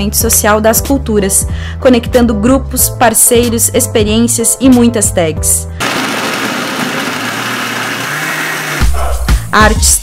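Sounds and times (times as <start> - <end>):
blender running: 5.8 - 8.9
music with heavy beat: 8.4 - 10.0.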